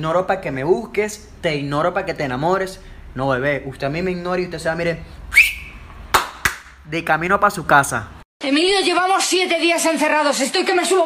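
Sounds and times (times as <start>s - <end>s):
rising whistle: 5.3s - 5.9s.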